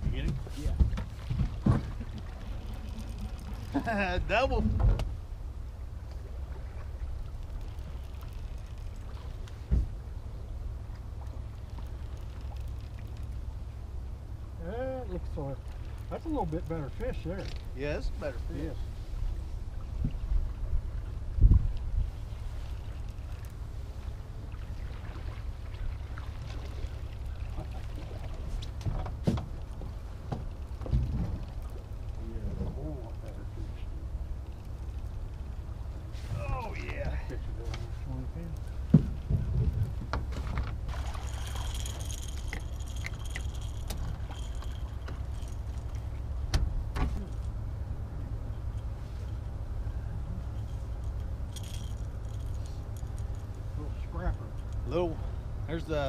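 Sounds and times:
wind rumble on microphone: 0.0 - 14.5, 15.1 - 55.8
fishing tackle knocking and rattling: 17.4 - 17.7, 38.8 - 47.6, 50.5 - 53.8.

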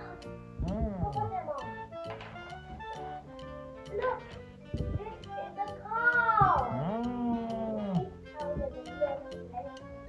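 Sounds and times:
child's excited exclamation: 5.9 - 6.8.

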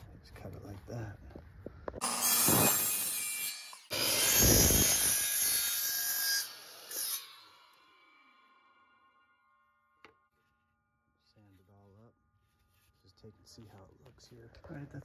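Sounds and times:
miter saw cutting wood: 2.0 - 9.3.

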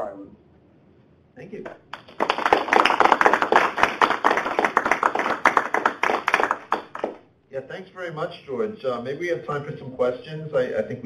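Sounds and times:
audience applauding: 1.9 - 7.2.

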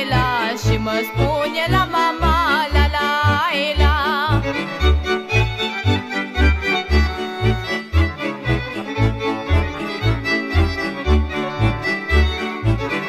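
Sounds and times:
accordion-led folk band: 0.0 - 13.0
pulsing bass notes: 0.0 - 13.0.

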